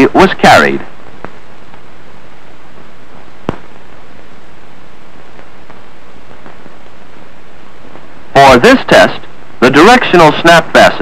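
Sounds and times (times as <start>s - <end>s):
film soundtrack hiss: 0.0s - 11.0s
sharp pop: 1.2s - 1.8s, 2.8s - 3.8s, 5.3s - 6.8s.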